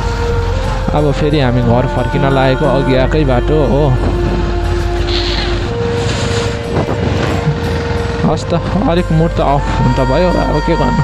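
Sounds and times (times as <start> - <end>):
wind rushing over microphone: 3.8 - 8.0
motorcycle engine running: 4.2 - 9.8.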